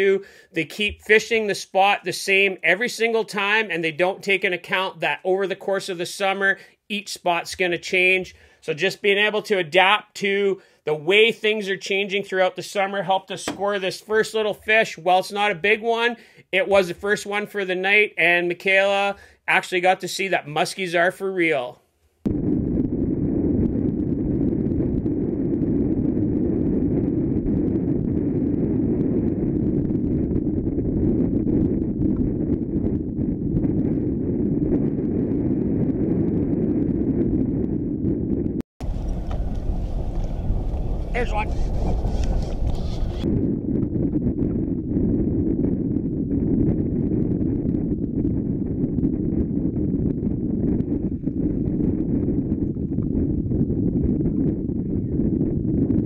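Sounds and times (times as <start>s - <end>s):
muffled wind on microphone: 22.2s - 56.0s.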